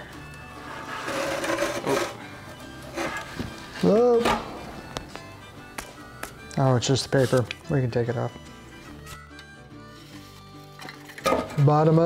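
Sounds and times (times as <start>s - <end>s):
quiet background music: 0.0s - 12.0s
foam scraping against metal box: 0.6s - 2.2s, 2.9s - 3.3s.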